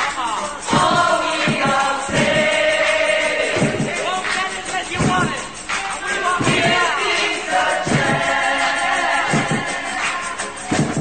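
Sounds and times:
group of voices singing: 0.0 - 11.0
steady thumping beat: 0.0 - 11.0.

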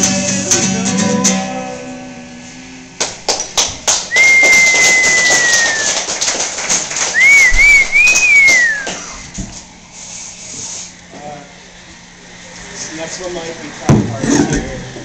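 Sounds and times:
people clapping: 3.0 - 9.2
person whistling: 4.1 - 6.0, 7.2 - 9.2.

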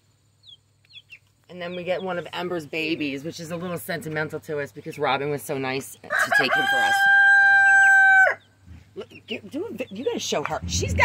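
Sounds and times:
rooster crowing: 6.1 - 8.4.

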